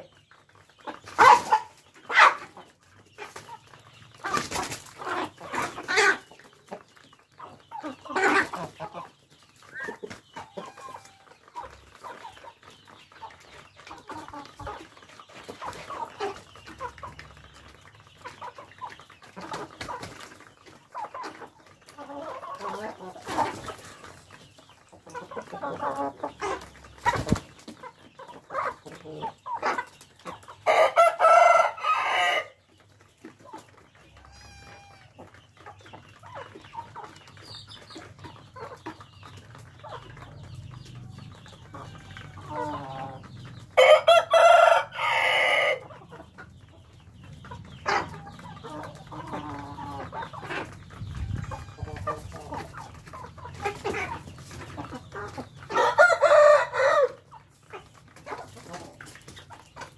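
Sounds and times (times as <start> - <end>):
chickens clucking: 0.0 - 59.9
rooster crowing: 43.8 - 45.8.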